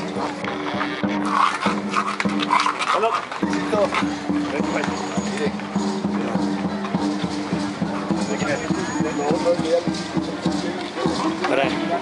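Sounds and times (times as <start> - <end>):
horses' hooves on pavement: 0.0 - 12.0.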